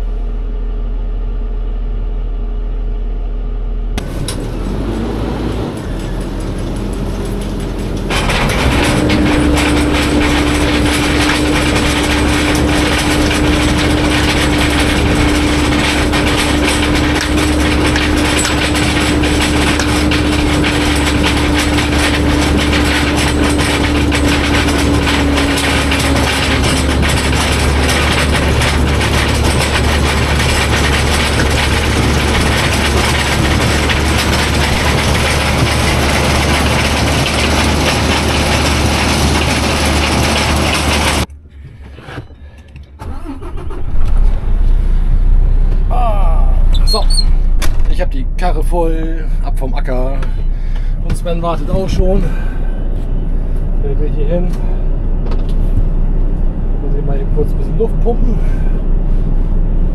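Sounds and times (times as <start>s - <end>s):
conveyor machinery running: 0.0s - 59.9s
potatoes tumbling into metal tipper: 6.0s - 41.2s.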